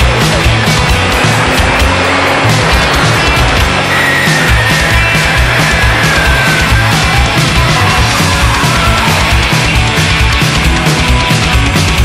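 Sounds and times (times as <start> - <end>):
drums: 0.0 - 12.0
electric guitar: 0.0 - 12.0
walking double bass line: 0.0 - 12.0
high held sliding note: 1.0 - 7.2.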